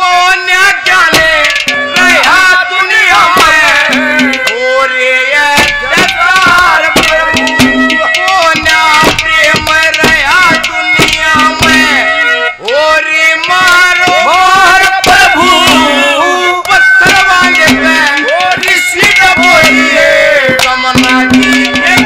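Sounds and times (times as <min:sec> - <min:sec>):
man singing: 0:00.0 - 0:22.0
sustained melodic accompaniment: 0:00.8 - 0:22.0
hand drum strokes: 0:01.1 - 0:02.4, 0:03.2 - 0:04.6, 0:05.6 - 0:12.8, 0:13.4 - 0:16.2, 0:16.8 - 0:22.0.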